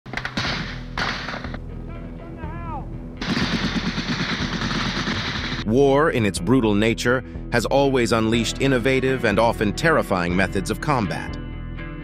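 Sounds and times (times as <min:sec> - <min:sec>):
rapid automatic gunfire: 0:03.2 - 0:05.6.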